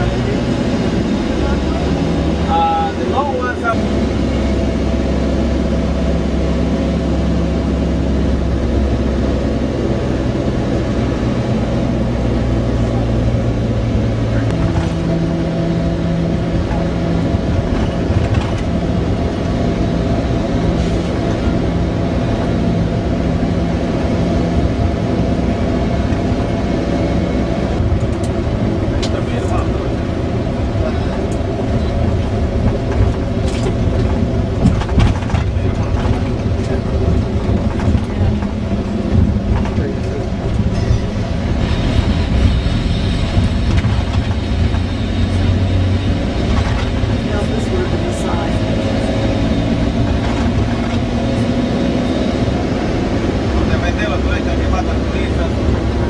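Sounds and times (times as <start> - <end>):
bus engine drone: 0.0 - 56.0
knocks and rattles: 32.6 - 45.0.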